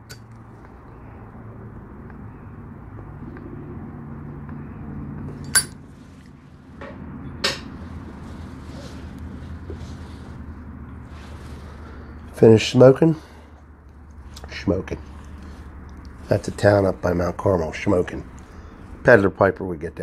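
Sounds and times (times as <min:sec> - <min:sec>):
torch lighter flame rushing: 0:06.1 - 0:12.4
puffing on a pipe: 0:07.4 - 0:12.4, 0:13.2 - 0:17.4
breathy exhaling: 0:07.9 - 0:12.4, 0:13.0 - 0:17.0, 0:18.2 - 0:19.0.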